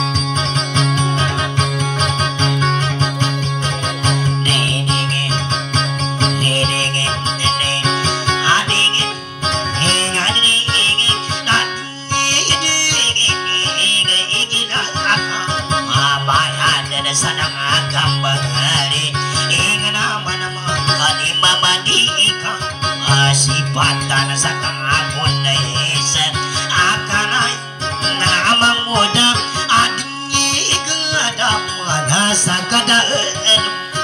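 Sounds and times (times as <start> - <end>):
acoustic guitar fast plucking: 0.0 - 34.0.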